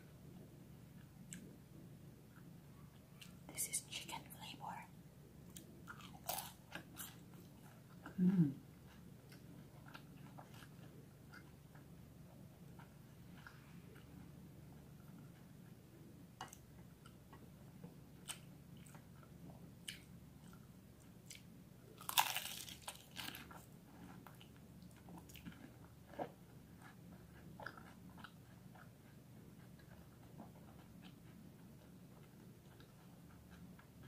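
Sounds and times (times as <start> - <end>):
crunching crisp pastry: 5.5 - 8.2, 16.4 - 34.0.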